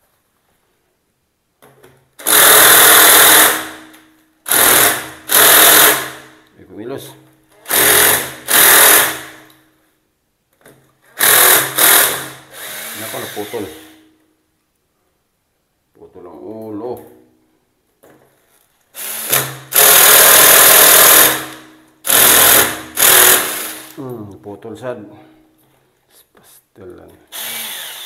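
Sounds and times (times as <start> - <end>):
cordless drill bursts: 2.2 - 3.8, 4.5 - 6.2, 7.7 - 9.3, 11.2 - 14.0, 19.0 - 21.4, 22.0 - 24.0, 27.3 - 28.0.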